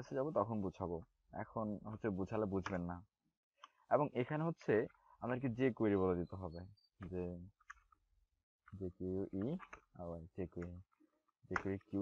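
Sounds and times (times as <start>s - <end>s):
man speaking: 0.0s - 3.1s, 3.9s - 7.5s, 8.7s - 10.8s, 11.5s - 12.0s
faint keyboard clicks: 8.7s - 12.0s.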